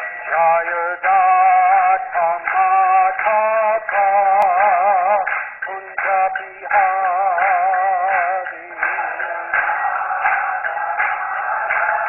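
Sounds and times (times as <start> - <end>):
person singing with vibrato: 0.0 - 12.0.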